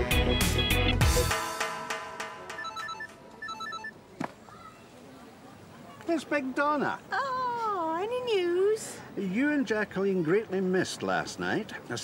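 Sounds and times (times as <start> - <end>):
mobile phone ringtone beeps: 2.5 - 4.0.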